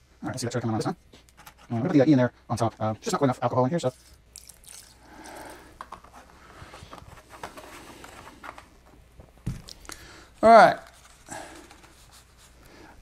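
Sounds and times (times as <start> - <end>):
liquid trickling into plastic bowl: 4.3 - 5.5.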